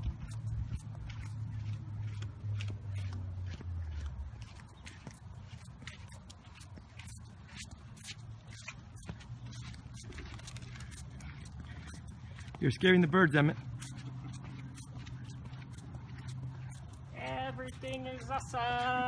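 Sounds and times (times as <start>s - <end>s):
footsteps on sidewalk: 0.0s - 19.0s
low vehicle hum: 0.0s - 19.0s.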